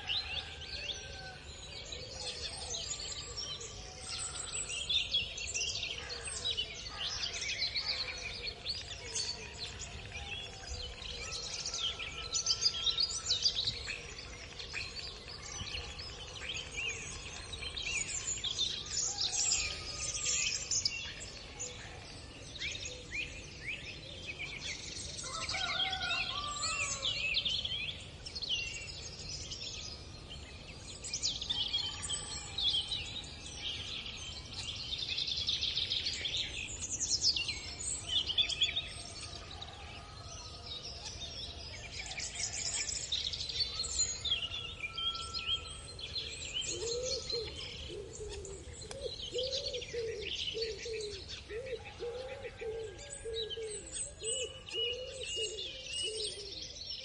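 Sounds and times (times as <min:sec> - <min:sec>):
small birds chirping and trilling: 0:00.0 - 0:57.0.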